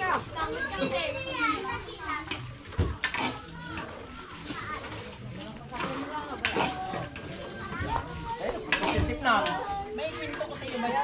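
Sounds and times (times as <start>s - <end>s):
children calling out and chattering: 0.0s - 11.0s.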